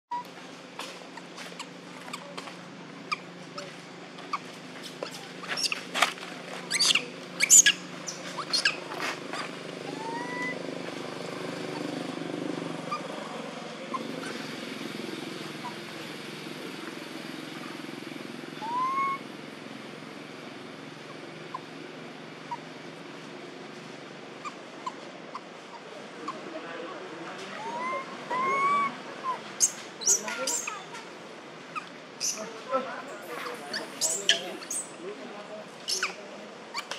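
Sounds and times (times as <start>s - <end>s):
monkey squeaky calls: 1.2s - 2.3s, 3.0s - 3.7s, 4.3s - 6.0s, 6.6s - 10.8s, 12.8s - 13.2s, 15.5s - 15.8s, 18.6s - 19.2s, 24.4s - 26.4s, 27.5s - 30.9s, 31.7s - 32.5s, 33.3s - 35.0s, 35.8s - 36.9s.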